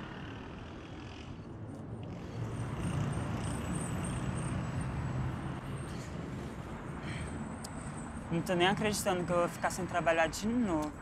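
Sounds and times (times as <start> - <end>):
heavy vehicle rumble: 0.0 - 9.8
passing cars: 0.0 - 11.0.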